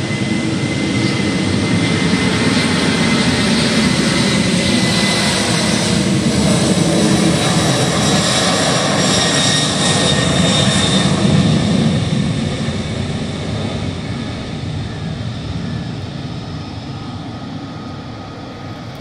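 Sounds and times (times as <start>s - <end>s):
jet engines roaring with whine: 0.0s - 19.0s.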